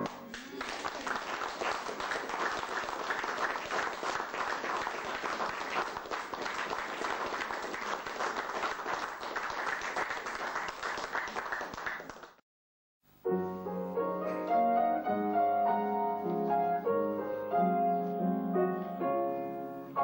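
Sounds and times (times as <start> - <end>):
audience applause: 0.0 - 12.4.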